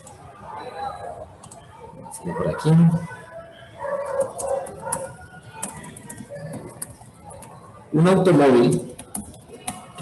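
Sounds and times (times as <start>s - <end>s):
keyboard keys clicking: 4.1s - 7.6s, 8.6s - 10.0s.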